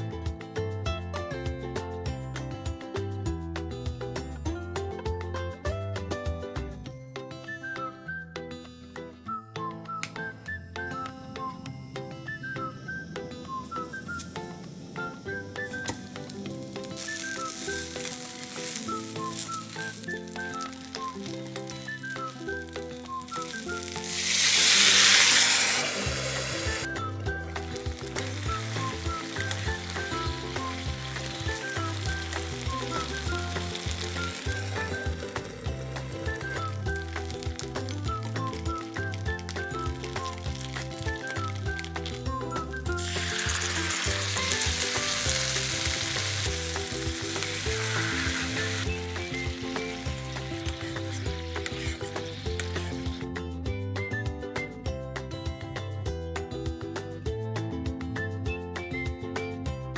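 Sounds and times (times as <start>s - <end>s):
background music with beat: 0.0s - 59.9s
food sizzling in frying pan: 13.7s - 53.2s.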